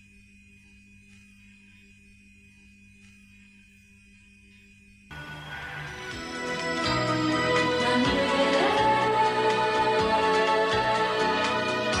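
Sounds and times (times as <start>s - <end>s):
quiet held chord background music: 5.1s - 12.0s.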